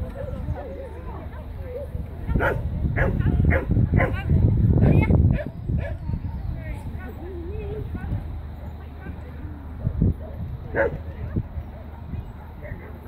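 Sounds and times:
dog barking: 0:02.4 - 0:04.2, 0:10.7 - 0:11.0.

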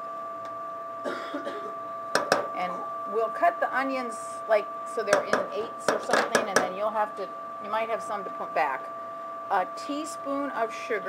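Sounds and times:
steady two-note hum: 0:00.0 - 0:11.0.

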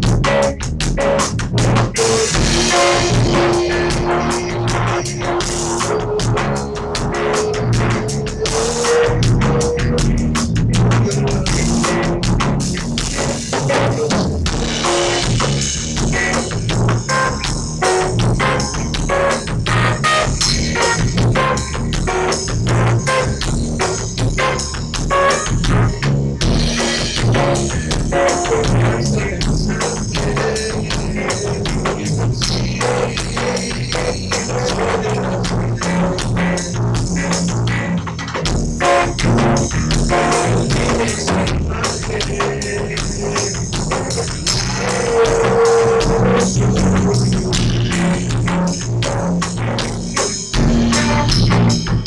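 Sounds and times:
bass guitar: 0:00.0 - 0:52.0
drum kit steady rhythm: 0:00.0 - 0:52.0
electric guitar chords: 0:00.0 - 0:52.0
live band playing bossa nova: 0:00.2 - 0:52.0.

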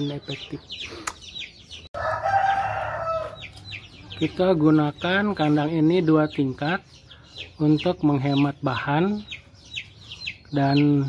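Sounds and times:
chicks peeping: 0:00.0 - 0:11.0
rooster crowing: 0:02.0 - 0:03.5.

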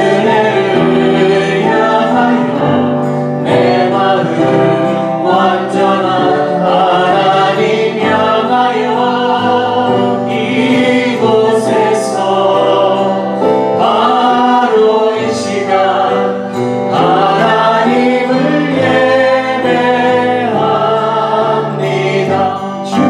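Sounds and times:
group singing worship song: 0:00.0 - 0:23.0
musical accompaniment: 0:00.0 - 0:23.0.

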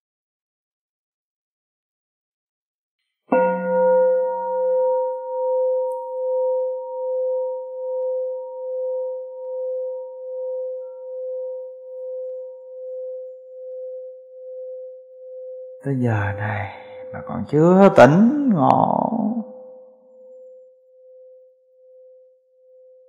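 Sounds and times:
bowl bell ringing: 0:03.3 - 0:11.2.

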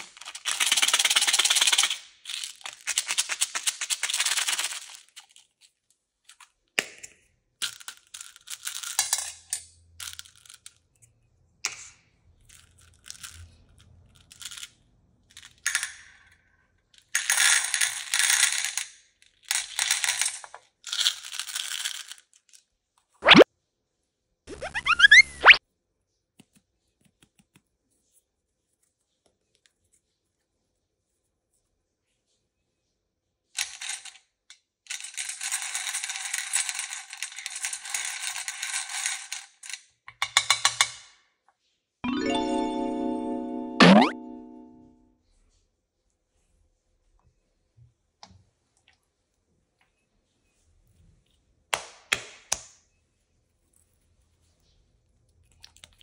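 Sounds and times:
plastic beads clattering into metal tin: 0:00.0 - 0:05.5, 0:07.6 - 0:10.8, 0:17.1 - 0:22.6.

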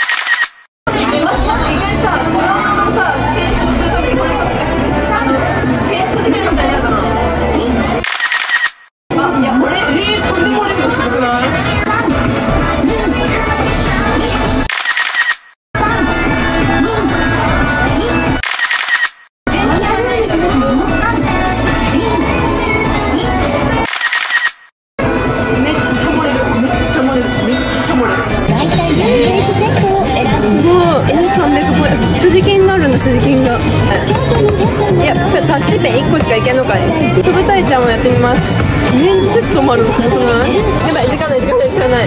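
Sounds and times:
camera shutter burst: 0:00.0 - 0:00.7, 0:08.0 - 0:08.9, 0:14.7 - 0:15.5, 0:18.4 - 0:19.3, 0:23.8 - 0:24.7
background music: 0:15.8 - 0:18.4, 0:19.5 - 0:23.9, 0:25.0 - 0:42.0.

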